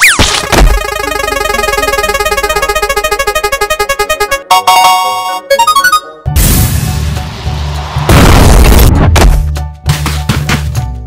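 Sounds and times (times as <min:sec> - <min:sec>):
cartoon spinning wheel synth effect: 0:00.0 - 0:06.0.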